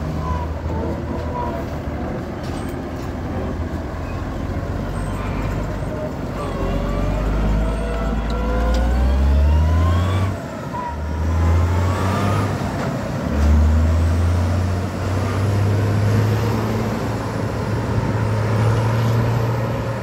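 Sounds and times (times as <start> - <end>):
tractor diesel engine accelerating: 0.0 - 20.0.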